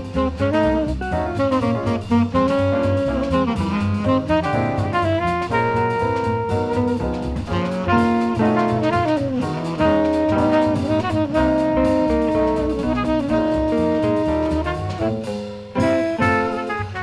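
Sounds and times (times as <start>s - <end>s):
small-group jazz: 0.0s - 17.0s.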